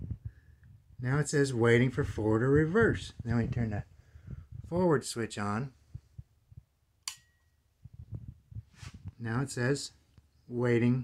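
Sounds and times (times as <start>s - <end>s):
toggle switch clicking: 7.0s - 7.3s.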